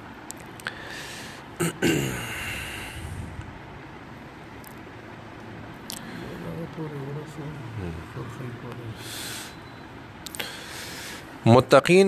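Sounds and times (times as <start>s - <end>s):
man's low voice: 6.2s - 9.1s.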